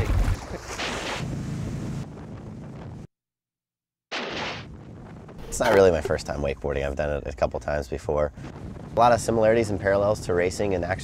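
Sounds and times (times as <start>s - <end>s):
water splashing and spray: 0.0s - 2.1s
wind buffeting microphone: 1.2s - 3.1s, 4.7s - 11.0s.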